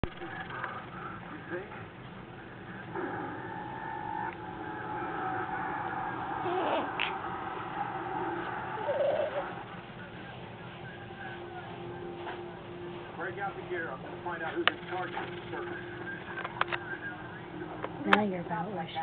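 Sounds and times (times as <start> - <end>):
television playing: 0.0 - 19.0
baby squeaks and grunts: 6.4 - 7.1.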